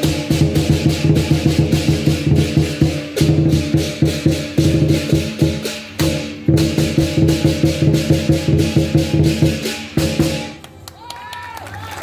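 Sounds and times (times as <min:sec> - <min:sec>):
big drum beaten rapidly: 0:00.0 - 0:10.6
cymbals and gong ringing: 0:00.0 - 0:10.6.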